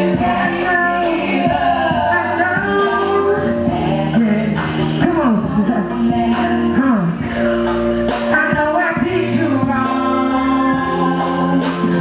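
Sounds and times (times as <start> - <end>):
live music: 0.0 - 12.0.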